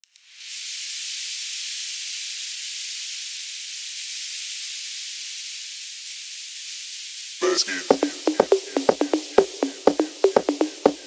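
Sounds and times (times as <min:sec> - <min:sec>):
high hiss of white noise: 0:00.4 - 0:07.9.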